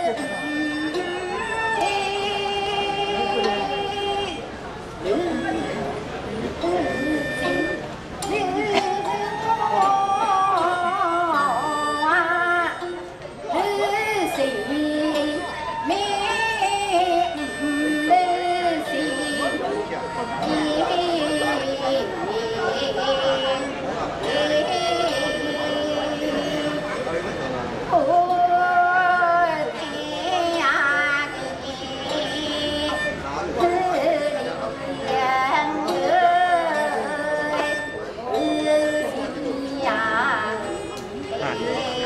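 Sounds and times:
woman singing long vowels: 0.0s - 4.4s, 5.0s - 19.6s, 20.2s - 26.8s, 27.9s - 42.0s
bowed fiddle: 0.0s - 42.0s
plucked lute: 0.0s - 42.0s
vertical flute: 5.0s - 42.0s.

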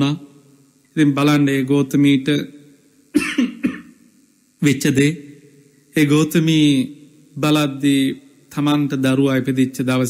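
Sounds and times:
man speaking: 1.0s - 2.6s, 4.6s - 10.0s
man coughing: 3.2s - 4.0s.

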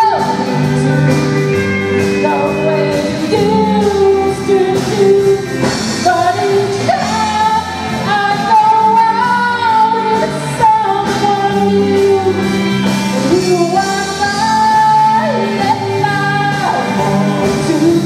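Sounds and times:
live rock band: 0.0s - 18.0s
woman singing: 0.0s - 18.0s.

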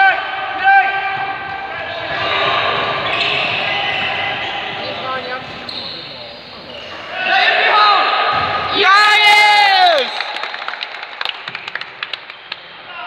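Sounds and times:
people shouting in echoing hall: 0.0s - 5.4s, 6.1s - 10.5s
ball bouncing on hall floor: 0.6s - 6.4s, 8.3s - 9.0s.

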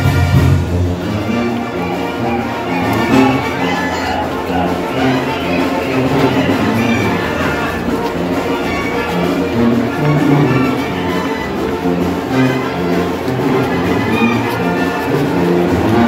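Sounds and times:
brass band playing: 0.0s - 16.0s.

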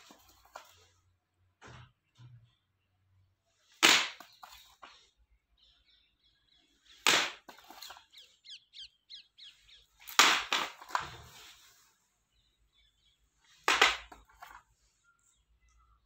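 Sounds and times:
small bird chirps: 5.0s - 10.1s, 11.8s - 13.6s, 14.7s - 16.0s.

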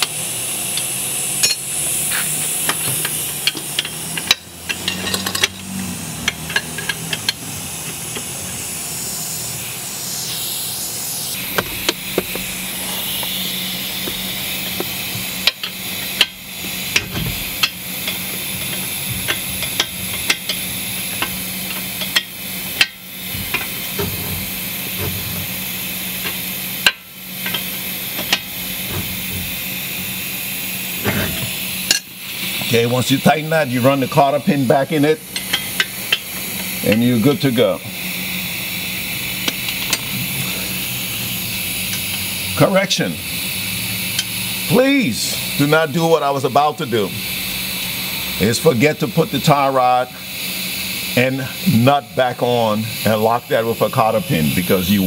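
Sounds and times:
steady hiss and low hum: 0.0s - 55.0s
wrench clicking and knocking: 0.8s - 8.3s, 14.0s - 25.5s, 26.2s - 29.6s, 35.3s - 37.0s, 39.4s - 40.1s, 44.1s - 44.4s.

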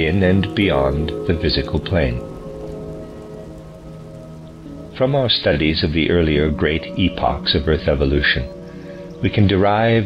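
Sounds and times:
faint hiss: 0.0s - 10.0s
soft ambient music: 0.0s - 10.0s.

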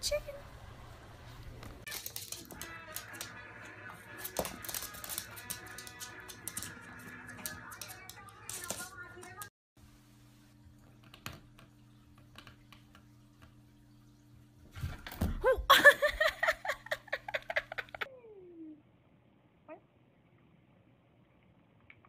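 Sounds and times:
background music: 1.9s - 8.4s.

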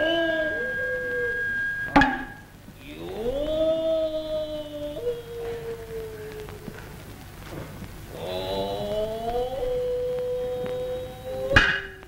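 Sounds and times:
man's drawn-out chanted call: 0.0s - 7.0s, 8.1s - 11.8s
single sharp strike: 1.9s - 2.4s.

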